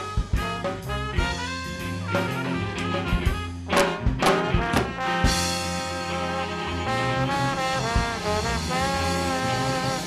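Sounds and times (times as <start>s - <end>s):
live jazz band playing: 0.0s - 10.0s.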